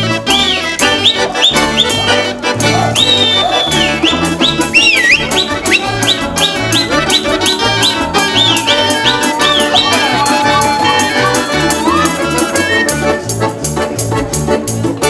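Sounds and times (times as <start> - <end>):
folk pipe sliding notes: 0.0 - 13.6
balalaikas strumming: 0.0 - 15.0
bass balalaika: 0.0 - 15.0
button accordion: 0.0 - 15.0.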